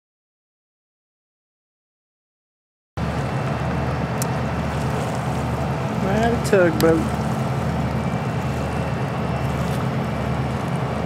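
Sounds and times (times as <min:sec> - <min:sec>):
air noise: 0:03.0 - 0:11.0
boat diesel engine drone: 0:03.0 - 0:11.0
water washing: 0:03.0 - 0:11.0.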